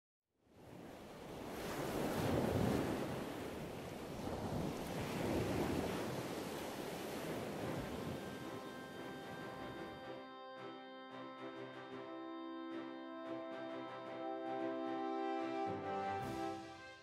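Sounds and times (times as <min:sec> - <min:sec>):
ocean waves washing in: 0:00.5 - 0:10.3.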